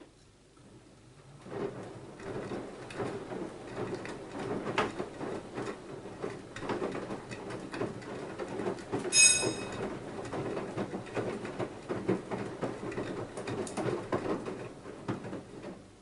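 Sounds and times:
washing machine drum turning: 0:09.0 - 0:10.8
brief high-pitched tone: 0:09.1 - 0:09.8.

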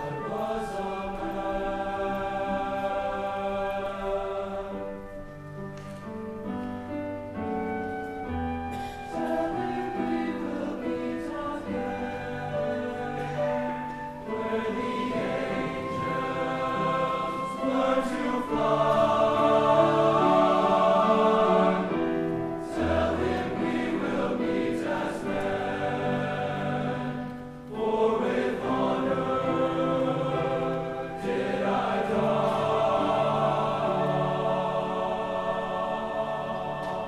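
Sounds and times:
men's choir singing: 0:00.0 - 0:05.6, 0:08.6 - 0:37.0.

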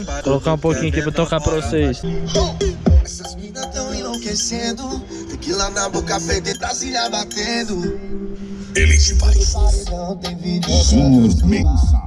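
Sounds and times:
loud subwoofer bass: 0:00.0 - 0:06.6, 0:08.8 - 0:12.0
rap music through car speakers: 0:00.0 - 0:08.0, 0:08.6 - 0:12.0.

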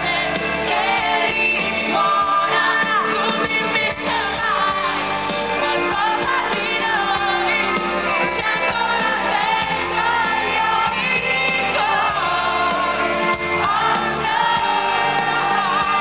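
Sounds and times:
electric guitar: 0:00.0 - 0:16.0
live band playing: 0:00.0 - 0:16.0
woman singing: 0:00.0 - 0:16.0.

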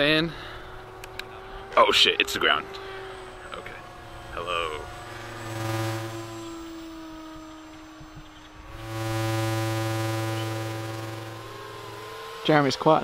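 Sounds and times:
model aircraft motor buzzing: 0:00.5 - 0:13.0.

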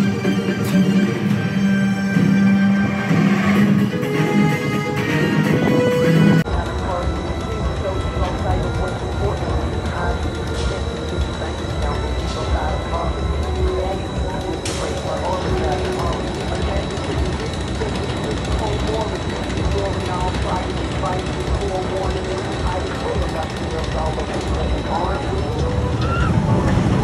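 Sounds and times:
indistinct voices: 0:00.0 - 0:27.0
roller coaster running: 0:00.0 - 0:27.0
wind rumble on microphone: 0:25.6 - 0:27.0.

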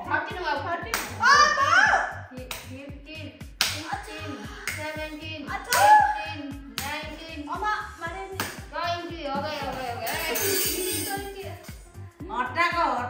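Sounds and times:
background music with beat: 0:00.0 - 0:13.0.

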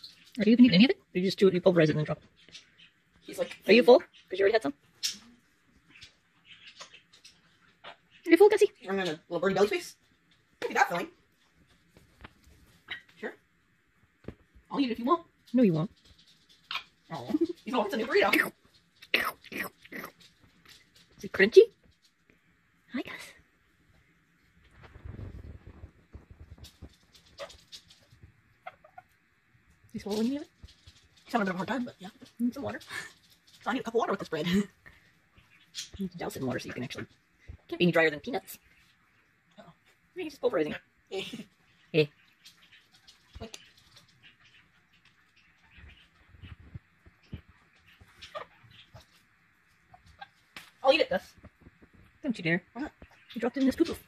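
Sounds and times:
woman speaking: 0:00.4 - 0:02.2, 0:03.2 - 0:04.8, 0:08.3 - 0:10.0, 0:10.6 - 0:11.2, 0:14.7 - 0:15.9, 0:17.1 - 0:20.1, 0:21.2 - 0:21.8, 0:22.9 - 0:23.4, 0:29.9 - 0:30.5, 0:31.3 - 0:34.8, 0:36.0 - 0:37.1, 0:37.7 - 0:38.6, 0:39.6 - 0:42.2, 0:50.8 - 0:51.4, 0:52.2 - 0:54.0
parrot beak crunching food: 0:15.2 - 0:22.5, 0:24.6 - 0:29.1, 0:41.4 - 0:52.2
parrot vocal sound: 0:28.6 - 0:29.1, 0:41.5 - 0:49.2, 0:49.8 - 0:50.5.

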